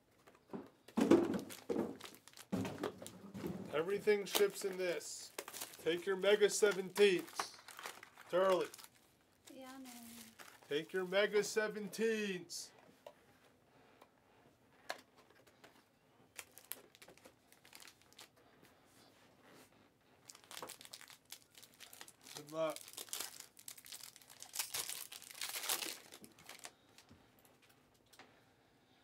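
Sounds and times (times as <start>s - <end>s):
cards and boxes tapping and rustling: 0.0s - 5.8s, 14.8s - 18.3s
foil wrapper crinkling and tearing: 1.4s - 2.9s, 4.2s - 9.1s, 9.8s - 10.7s, 16.3s - 18.4s, 20.2s - 27.0s.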